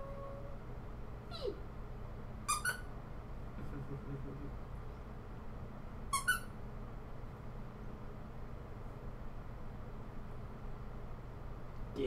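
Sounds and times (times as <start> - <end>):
toy squeaker squeaks: 2.5 - 2.9, 6.1 - 6.5.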